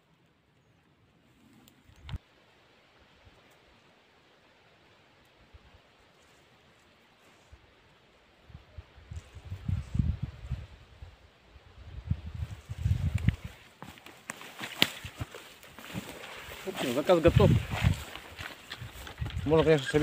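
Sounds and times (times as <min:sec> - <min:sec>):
branches and leaves crackling: 0:00.0 - 0:20.0
footsteps through brush: 0:12.2 - 0:20.0.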